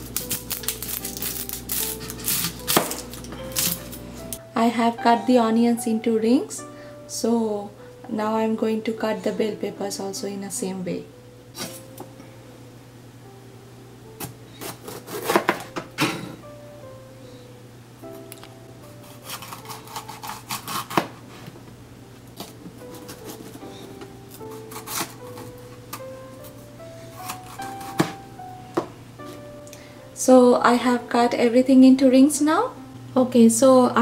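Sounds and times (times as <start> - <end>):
soft background music: 0.0 - 34.0.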